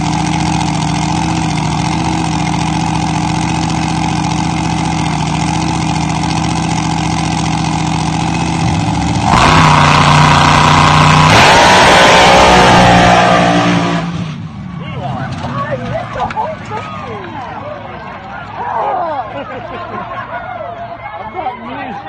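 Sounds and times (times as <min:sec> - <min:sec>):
racing car engine revving: 0:00.0 - 0:14.6.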